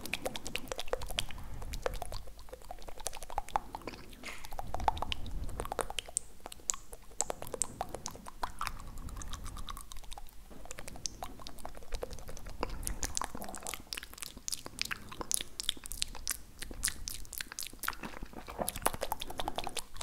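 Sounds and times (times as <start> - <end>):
wet mouth and tongue clicks: 0.0 - 20.0.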